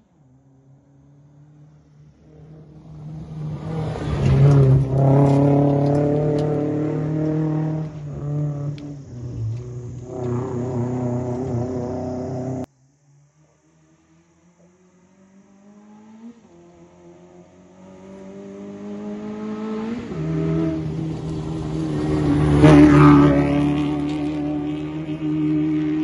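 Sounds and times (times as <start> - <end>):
rally car engine revving: 2.2 - 12.7, 14.8 - 26.0.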